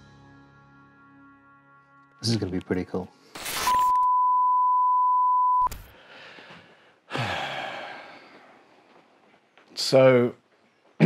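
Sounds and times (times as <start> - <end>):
high-pitched censor bleep: 3.6 - 5.8
long breathy sigh: 5.9 - 8.5.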